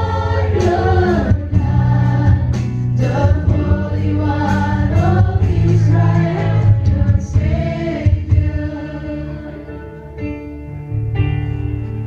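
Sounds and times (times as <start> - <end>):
group of voices singing: 0.0 - 10.0
live band playing: 0.0 - 12.0.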